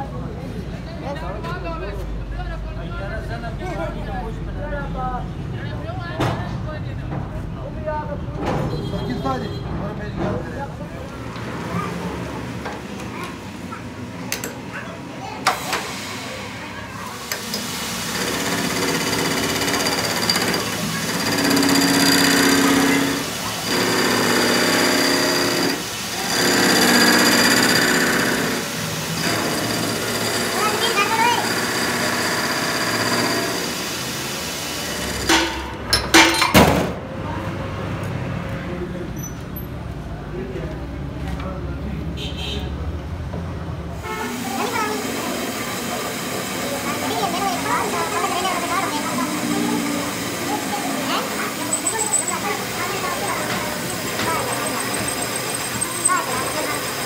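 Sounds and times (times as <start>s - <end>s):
workshop noise: 0.0s - 57.0s
metal lathe cutting steel: 17.2s - 35.7s, 44.0s - 57.0s.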